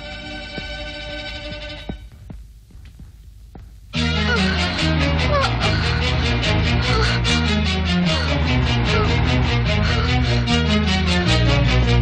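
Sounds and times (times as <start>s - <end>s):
soft low thuds: 0.1s - 4.0s.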